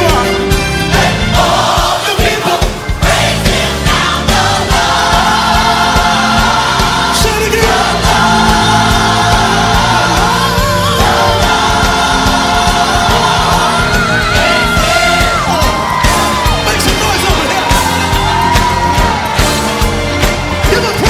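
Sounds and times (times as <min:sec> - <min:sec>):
bass line: 0:00.0 - 0:01.9, 0:02.8 - 0:21.0
gospel choir singing: 0:00.0 - 0:21.0.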